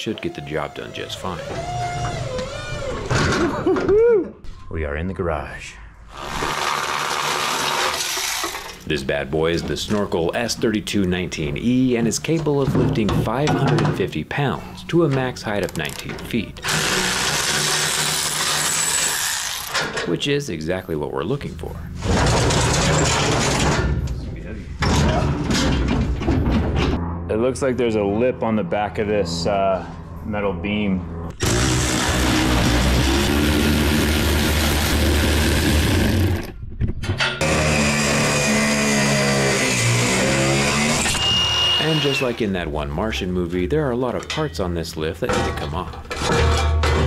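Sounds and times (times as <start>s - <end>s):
electric ratchet whirring: 6.1s - 8.8s, 16.6s - 19.9s, 31.3s - 36.4s
angle grinder cutting steel: 16.6s - 19.8s, 31.4s - 36.3s, 37.4s - 42.2s.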